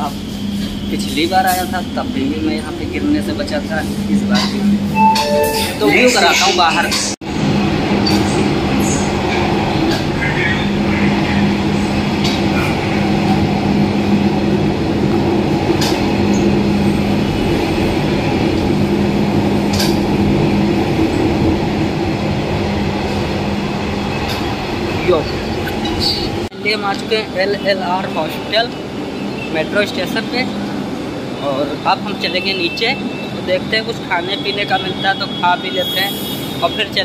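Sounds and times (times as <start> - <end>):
train running rumble: 0.0 - 35.3.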